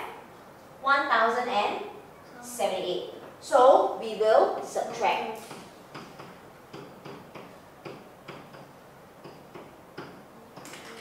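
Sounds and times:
pen tapping on whiteboard: 5.5s - 10.9s.

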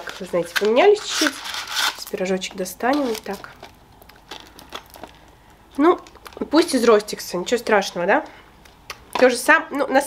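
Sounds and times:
paper sleeve crinkling: 0.0s - 6.8s.

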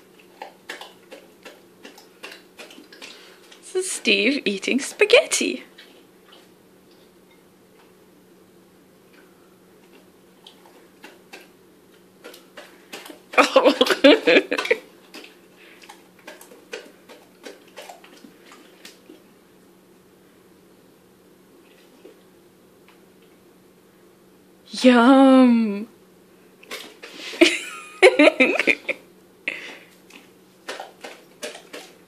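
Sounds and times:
dog chewing and smacking mouth: 0.0s - 3.6s, 12.2s - 19.2s, 30.1s - 32.0s.

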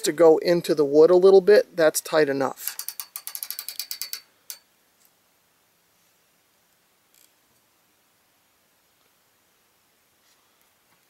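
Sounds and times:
ratchet wrench clicking: 2.6s - 4.6s.

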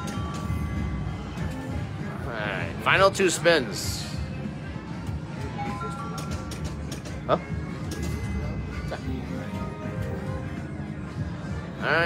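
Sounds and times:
low casino hum: 0.0s - 12.0s.

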